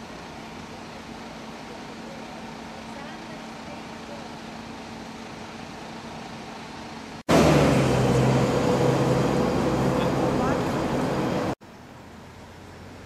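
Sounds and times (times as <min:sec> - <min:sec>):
street traffic: 0:00.0 - 0:13.0
vehicle engine running: 0:00.0 - 0:13.0.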